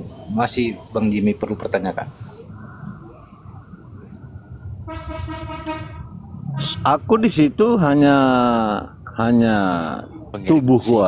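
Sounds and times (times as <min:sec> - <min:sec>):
horn tone: 0:04.8 - 0:06.9.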